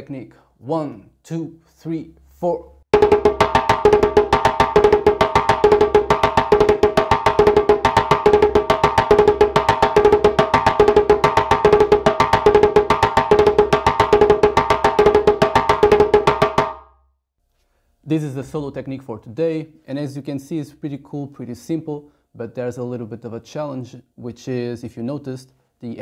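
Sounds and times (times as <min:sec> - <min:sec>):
djembe played with bare hands: 0:02.9 - 0:16.8.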